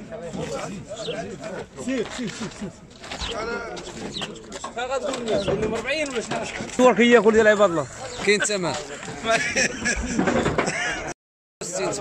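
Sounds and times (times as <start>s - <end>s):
voices talking over one another: 0.0s - 9.6s.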